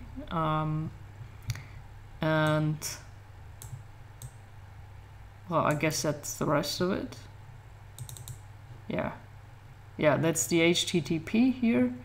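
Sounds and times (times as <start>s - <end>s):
computer fan hum: 0.0s - 12.0s
computer mouse clicks: 3.6s - 4.4s, 8.0s - 8.4s.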